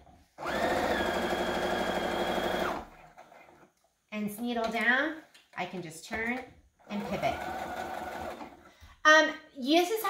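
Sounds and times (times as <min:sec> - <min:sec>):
sewing machine stitching: 0:00.4 - 0:03.7, 0:06.8 - 0:08.7.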